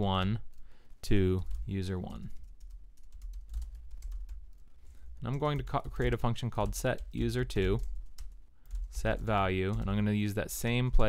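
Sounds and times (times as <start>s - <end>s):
typing on computer keyboard: 2.2s - 4.6s, 5.2s - 10.1s.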